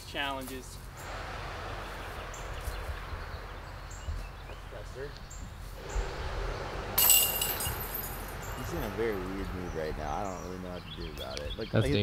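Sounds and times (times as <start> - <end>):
faint outdoor background: 0.0 - 12.0
disc striking metal chains: 7.0 - 9.3.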